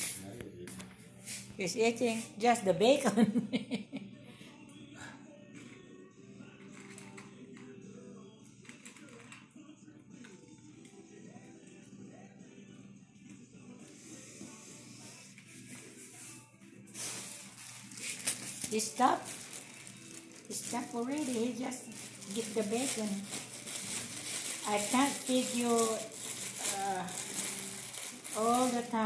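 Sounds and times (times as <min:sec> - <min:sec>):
faint background music: 0:00.0 - 0:29.0.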